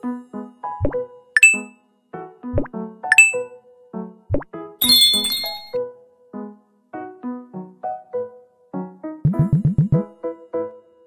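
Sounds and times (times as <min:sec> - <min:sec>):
synthesized jingle plucked notes: 0:00.8 - 0:01.7, 0:02.6 - 0:03.5, 0:04.3 - 0:05.8
bright chime dings: 0:01.4 - 0:01.7, 0:03.1 - 0:03.6, 0:04.8 - 0:05.8
shimmering bell-like flourish: 0:04.8 - 0:05.8.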